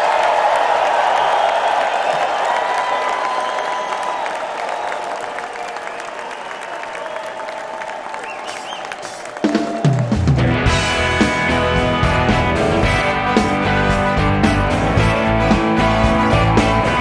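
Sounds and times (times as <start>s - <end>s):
crowd applauding and cheering: 0.0s - 17.0s.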